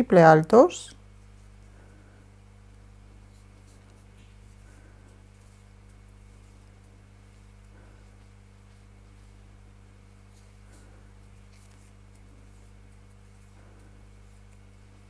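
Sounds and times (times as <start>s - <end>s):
low electrical hum: 0.0s - 15.0s
crochet hook rustling thread: 3.2s - 9.4s, 10.1s - 10.6s, 11.2s - 15.0s.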